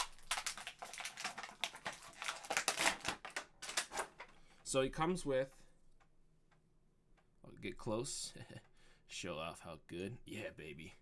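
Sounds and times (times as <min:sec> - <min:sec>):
plastic packaging crinkling: 0:00.0 - 0:04.4.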